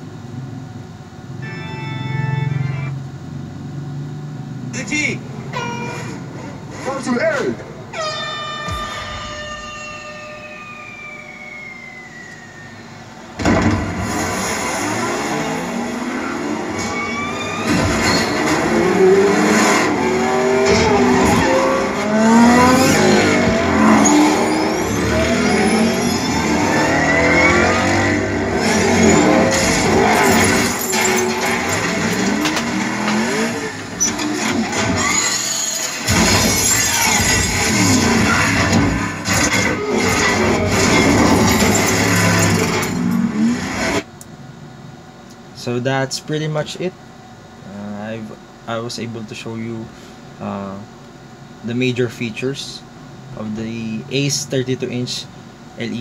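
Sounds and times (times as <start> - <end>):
race car engines revving and passing: 13.9 - 34.9
film soundtrack music on tv: 34.4 - 44.0.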